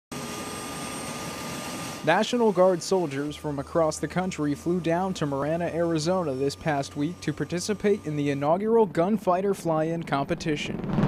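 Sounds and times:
helicopter turbine whine: 0:00.1 - 0:11.0
rotor and engine noise: 0:00.1 - 0:11.0.

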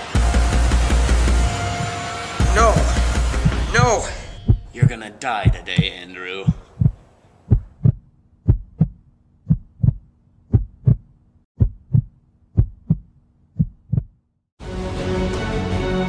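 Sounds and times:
music: 0:00.0 - 0:04.9, 0:14.6 - 0:16.0
heartbeat double thumps: 0:02.6 - 0:14.2.

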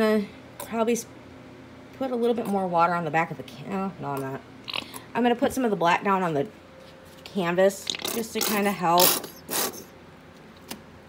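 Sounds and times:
squeeze bottle sputtering paint: 0:07.8 - 0:09.9.

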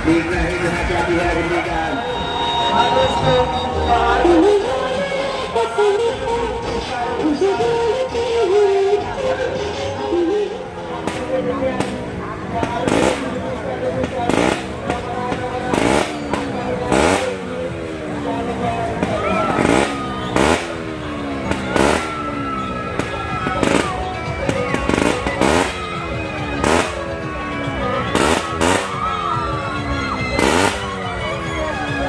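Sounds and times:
engines with falling pitch: 0:00.0 - 0:07.6, 0:09.0 - 0:32.0
fairground music: 0:00.0 - 0:32.0.

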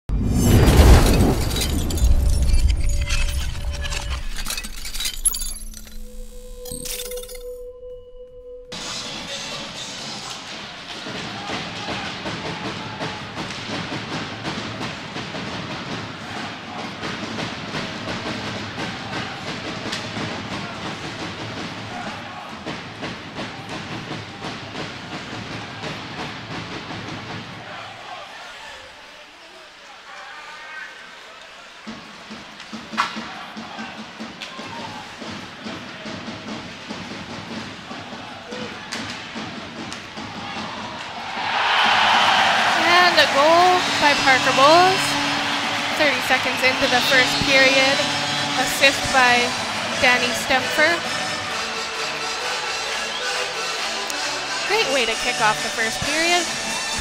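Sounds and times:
crowd cheering: 0:08.8 - 0:57.0
crowd noise: 0:08.8 - 0:57.0
hockey sticks and puck clacking: 0:31.9 - 0:37.8, 0:38.5 - 0:41.3.

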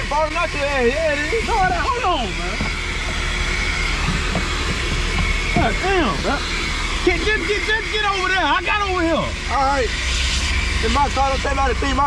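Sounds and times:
vacuum running with high whine: 0:00.0 - 0:12.0
vacuum nozzle sucking on seat: 0:00.6 - 0:12.0.

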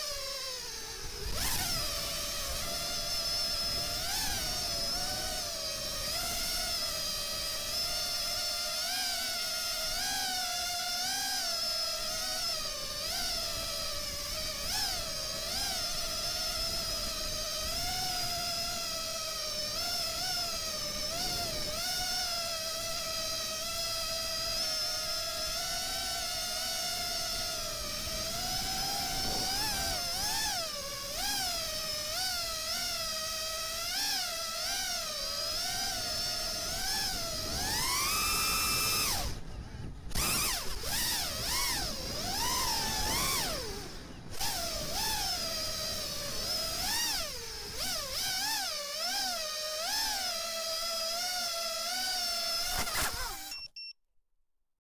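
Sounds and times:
quadcopter motors whining: 0:00.0 - 0:53.9.

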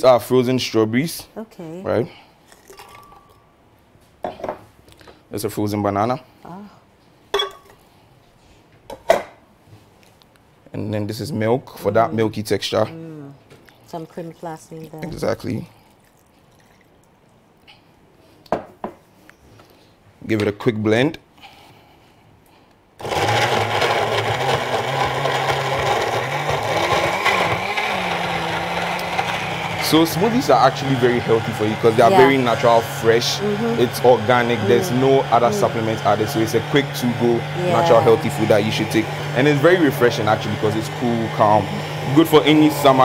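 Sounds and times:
blender motor running: 0:23.0 - 0:43.0.

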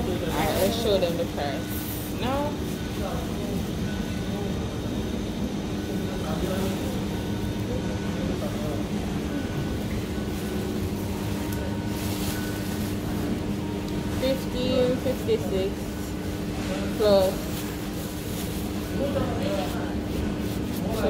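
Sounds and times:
steady hum: 0:00.0 - 0:21.0.

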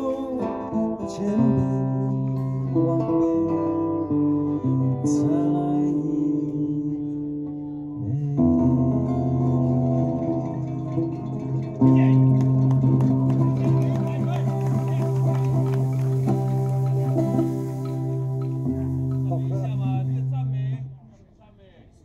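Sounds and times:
acoustic guitars playing chords: 0:00.0 - 0:21.2.

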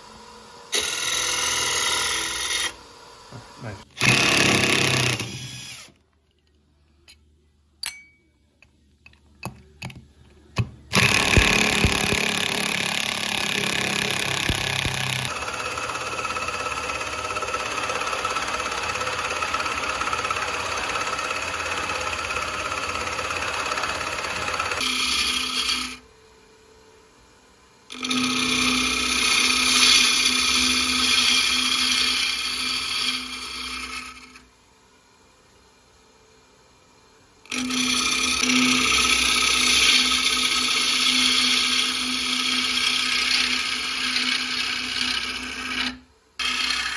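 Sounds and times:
power drill driving screws: 0:00.7 - 0:02.8, 0:04.0 - 0:06.0, 0:10.9 - 0:15.3
lathe humming: 0:10.9 - 0:25.9, 0:29.0 - 0:34.4, 0:37.5 - 0:45.9.

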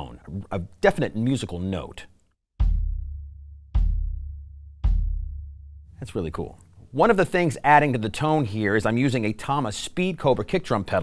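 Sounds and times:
kick drum hits: 0:02.6 - 0:05.6.

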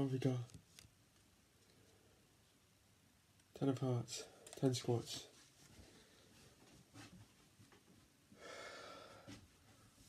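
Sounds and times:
man breathing out: 0:08.4 - 0:09.4.

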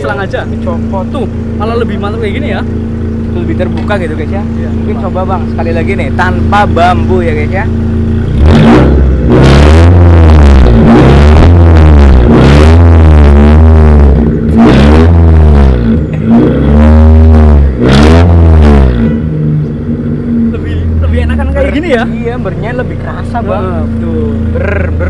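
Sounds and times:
car engine revving: 0:00.0 - 0:25.0.

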